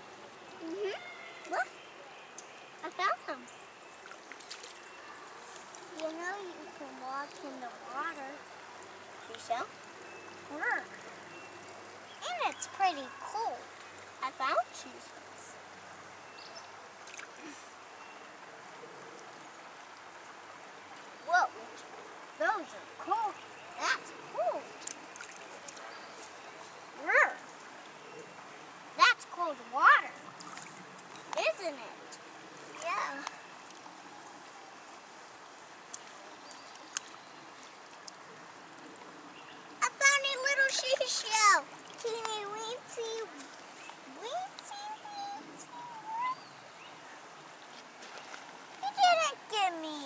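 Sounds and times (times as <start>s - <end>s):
creek water flowing: 0.0s - 50.0s
child's voice: 0.6s - 1.7s, 2.8s - 3.5s, 6.0s - 8.4s, 9.3s - 9.7s, 10.5s - 10.9s, 12.2s - 13.6s, 14.2s - 15.1s, 21.3s - 21.8s, 22.4s - 24.7s, 27.0s - 27.4s, 29.0s - 30.2s, 31.4s - 32.1s, 32.8s - 33.3s, 39.8s - 43.5s, 44.1s - 46.5s, 48.8s - 50.0s.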